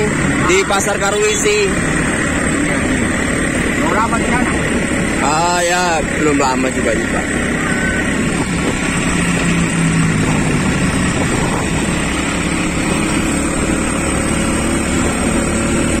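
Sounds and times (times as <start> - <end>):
motorcycle engine droning: 0.0 - 16.0
road and wind noise: 0.0 - 16.0.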